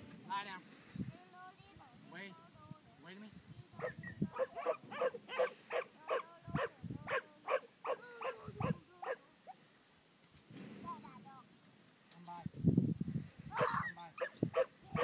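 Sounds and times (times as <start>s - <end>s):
dog barking rapidly: 3.8s - 9.2s, 13.6s - 15.0s.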